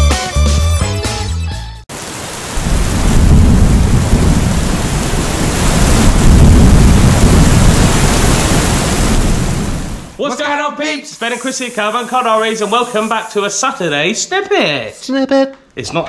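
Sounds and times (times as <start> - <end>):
heavy rain hiss: 1.9 - 10.2, 10.9 - 13.9
rolling thunder: 2.4 - 10.2.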